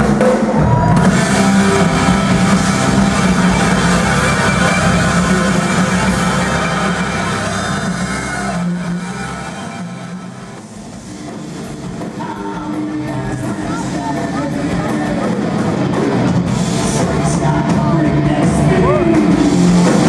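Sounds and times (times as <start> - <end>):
heavy metal band playing: 0.0 - 20.0.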